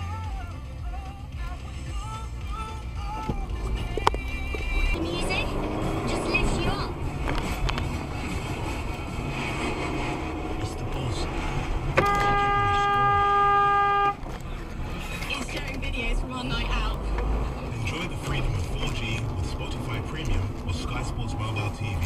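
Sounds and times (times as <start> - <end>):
road and engine noise in car: 0.0 - 22.0
car horn: 2.0 - 14.4.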